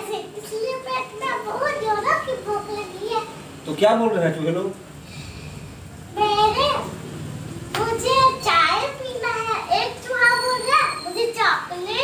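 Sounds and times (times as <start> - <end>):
boy talking: 0.0 - 3.4, 6.1 - 7.0, 7.7 - 12.0.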